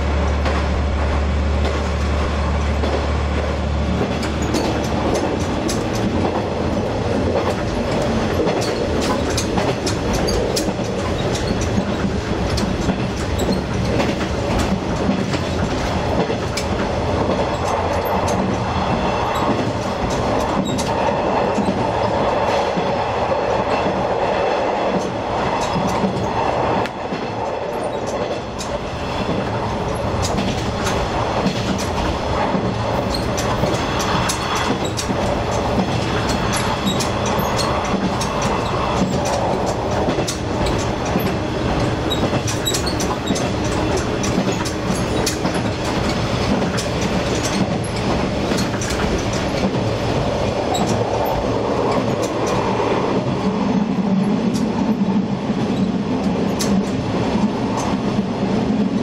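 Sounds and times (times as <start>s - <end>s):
diesel railcar engine and wheel rumble: 0.0s - 59.0s
clicks from rail joints: 0.2s - 22.9s, 24.9s - 53.5s, 54.3s - 54.9s, 55.6s - 59.0s.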